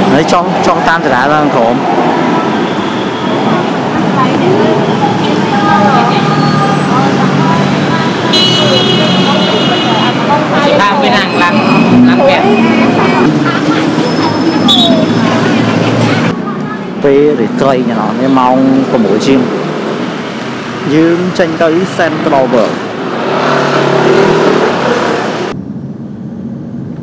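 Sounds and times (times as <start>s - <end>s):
people talking indistinctly: 0.0s - 23.0s
road traffic: 0.0s - 27.0s.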